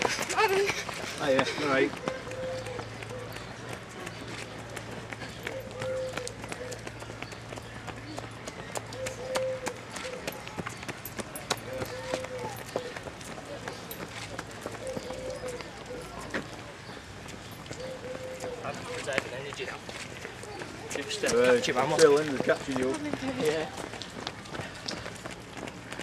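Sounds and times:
footsteps on wet paving: 0:00.0 - 0:26.0.

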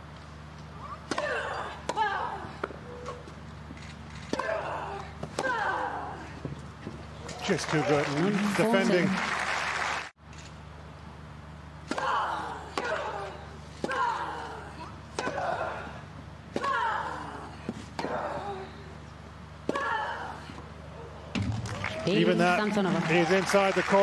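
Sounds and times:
racket striking tennis ball: 0:01.0 - 0:02.8.

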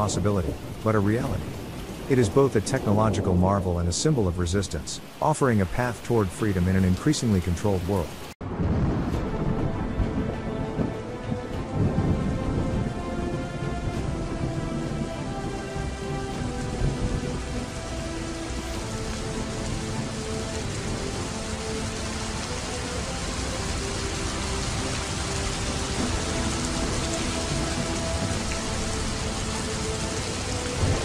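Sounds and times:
rain: 0:00.0 - 0:31.0
thunder: 0:08.4 - 0:17.9, 0:30.7 - 0:31.0.

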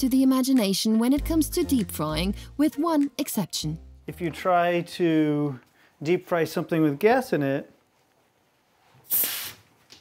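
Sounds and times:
soda bottle gas hissing: 0:09.0 - 0:09.7.

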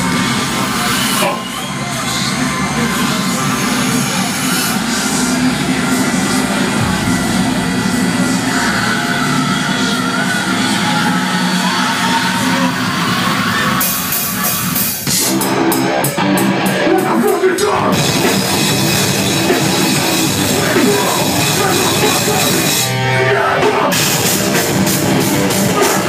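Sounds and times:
droning wash of sound: 0:00.0 - 0:14.1
drum hits: 0:06.1 - 0:10.2.

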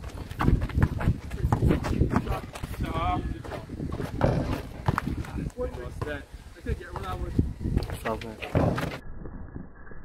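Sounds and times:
footsteps on concrete: 0:00.0 - 0:06.2, 0:06.9 - 0:08.9.

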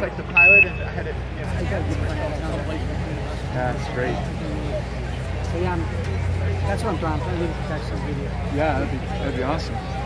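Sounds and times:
short high beep over loudspeaker: 0:00.4 - 0:00.9.

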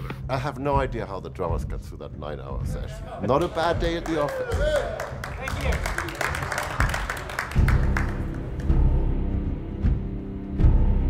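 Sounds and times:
people clapping and cheering: 0:02.9 - 0:09.0.

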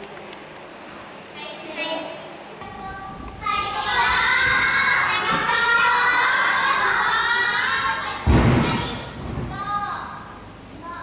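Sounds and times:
young girls talking: 0:01.3 - 0:11.0
girls shouting together: 0:03.6 - 0:10.2.

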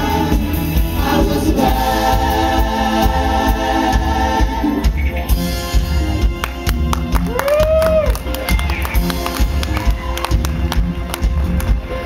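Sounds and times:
bass playing: 0:00.0 - 0:12.0
drum kit beat: 0:00.0 - 0:12.0.

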